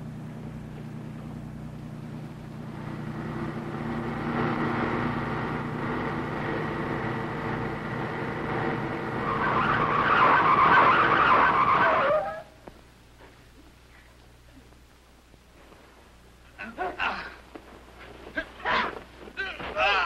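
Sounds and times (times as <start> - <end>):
car engine running: 0.0 - 12.5
tyre screech: 9.1 - 12.6.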